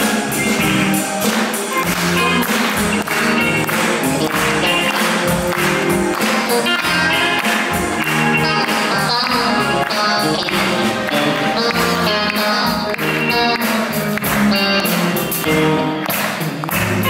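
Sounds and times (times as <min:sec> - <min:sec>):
drums and cymbals beat: 0:00.0 - 0:17.0
live band playing: 0:00.0 - 0:17.0.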